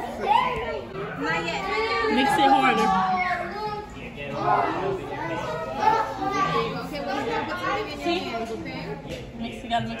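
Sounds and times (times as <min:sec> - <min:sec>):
chatter of children and adults: 0:00.0 - 0:10.0.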